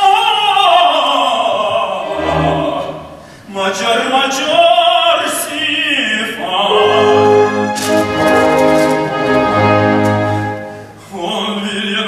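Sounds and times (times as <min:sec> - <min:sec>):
orchestra playing held chords: 0:02.0 - 0:03.4, 0:06.7 - 0:11.0.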